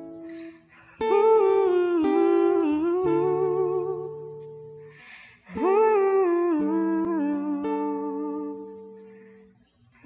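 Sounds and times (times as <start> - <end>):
person singing ballad: 0.0 - 9.1
acoustic guitar: 0.0 - 10.0.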